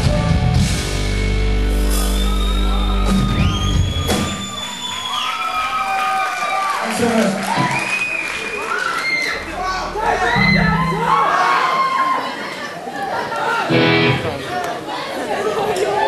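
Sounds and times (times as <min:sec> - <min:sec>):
rock band playing: 0:00.0 - 0:04.5, 0:09.4 - 0:11.3, 0:13.7 - 0:14.6
audience whooping and cheering: 0:00.8 - 0:15.1.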